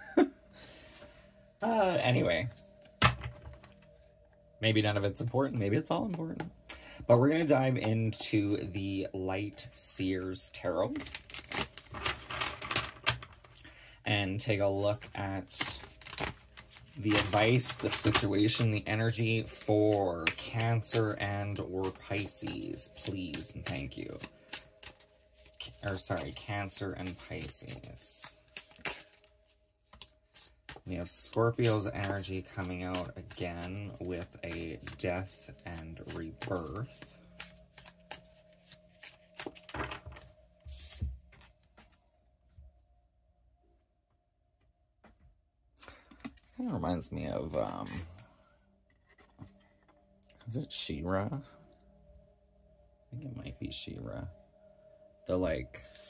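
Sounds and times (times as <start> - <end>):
low steady hum: 0.0 - 56.0
cards being shuffled: 10.9 - 13.5, 14.9 - 41.9.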